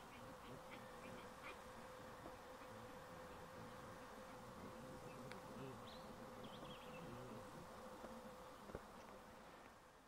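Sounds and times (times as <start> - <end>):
faint insect buzzing: 0.0 - 10.0.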